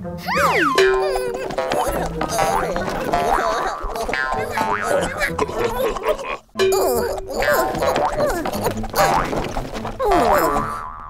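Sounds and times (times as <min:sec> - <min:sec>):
background music: 0:00.0 - 0:11.0
squeaky pitch glides: 0:00.2 - 0:02.8
cartoon springy boings: 0:00.2 - 0:05.4, 0:06.6 - 0:11.0.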